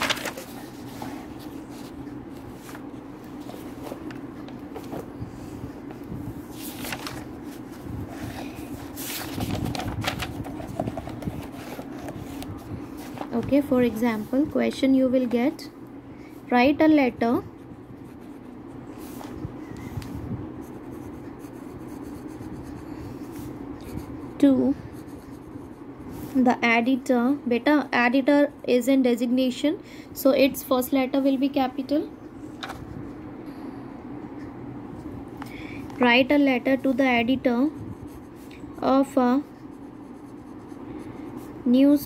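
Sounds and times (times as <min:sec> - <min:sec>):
steady low hum: 0:00.0 - 0:42.0
pen scratching on paper: 0:17.7 - 0:19.3, 0:20.6 - 0:25.9, 0:36.6 - 0:41.8.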